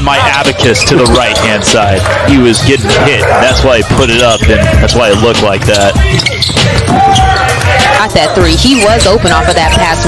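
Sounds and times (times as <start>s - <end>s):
background music: 0.0s - 10.0s.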